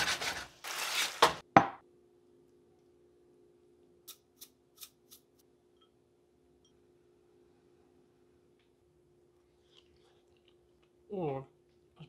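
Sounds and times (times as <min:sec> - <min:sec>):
faint hum: 0:05.4 - 0:12.0.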